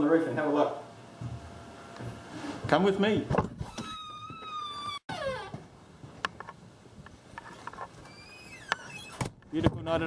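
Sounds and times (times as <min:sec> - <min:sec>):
door hinges squealing: 0:03.6 - 0:05.6, 0:08.0 - 0:09.4.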